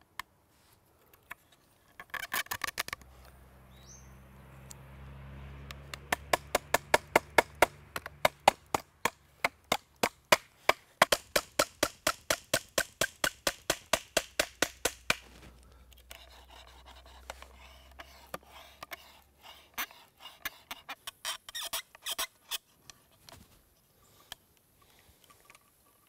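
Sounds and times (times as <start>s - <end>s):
metal tool tapping wooden peg: 5.7s - 15.2s.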